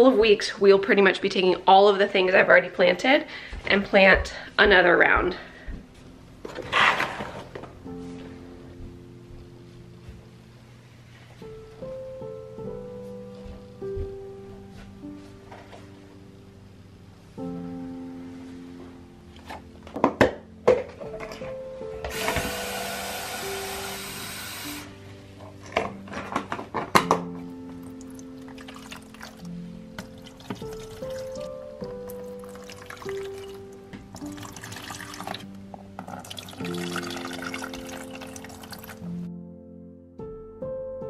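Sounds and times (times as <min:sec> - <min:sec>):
gentle background music: 0:00.0 - 0:41.0
water pouring from watering can: 0:28.0 - 0:31.5, 0:32.2 - 0:33.6, 0:34.2 - 0:39.1.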